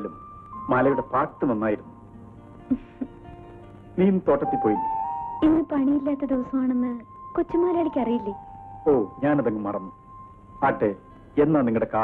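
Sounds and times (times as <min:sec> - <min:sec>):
thin steady tone: 0:04.4 - 0:12.0
people speaking: 0:05.4 - 0:09.9.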